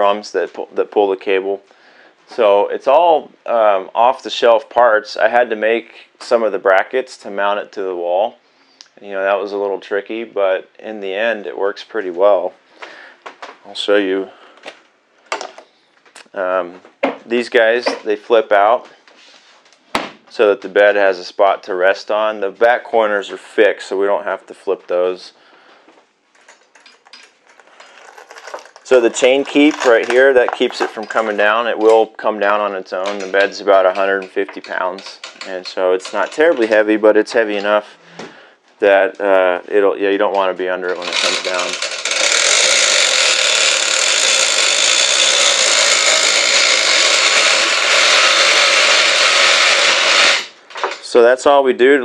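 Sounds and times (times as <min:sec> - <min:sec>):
chain and ratchet rattling: 0:26.4 - 0:31.4, 0:40.9 - 0:50.4.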